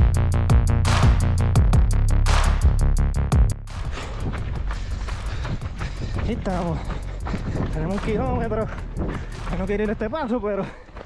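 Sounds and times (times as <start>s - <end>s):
drum-machine music track: 0.0s - 10.4s
footfalls on asphalt: 3.9s - 11.0s.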